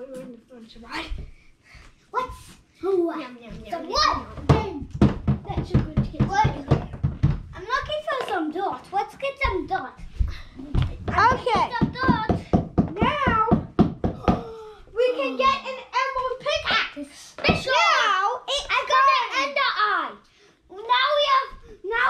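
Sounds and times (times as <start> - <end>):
thumps and knocks: 3.9 - 8.4, 9.4 - 14.5
children making play noises: 7.6 - 22.0.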